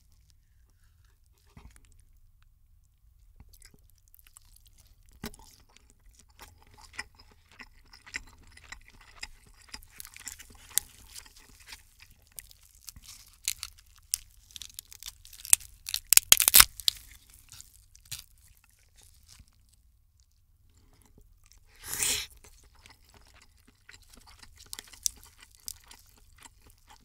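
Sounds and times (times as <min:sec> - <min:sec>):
crab shell cracking: 0:12.8 - 0:18.3.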